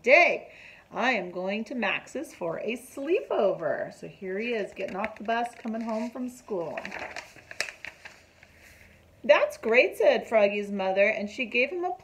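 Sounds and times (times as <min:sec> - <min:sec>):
paper page turning: 0:04.5 - 0:08.9.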